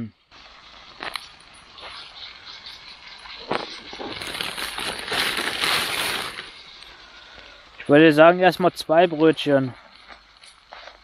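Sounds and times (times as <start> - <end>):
meatball sizzling in butter: 0.2 - 8.4.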